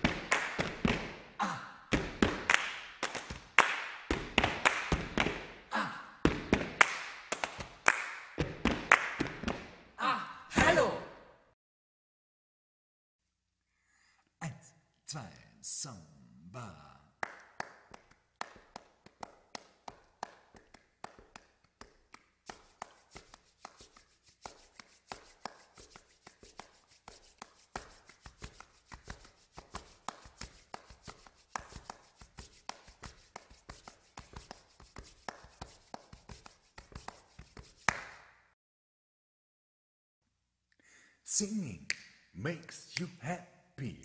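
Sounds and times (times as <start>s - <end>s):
hand claps: 0.0s - 1.3s, 1.9s - 5.6s, 6.2s - 9.8s, 17.2s - 38.5s, 41.8s - 42.2s
palms brushing together: 20.6s - 38.2s.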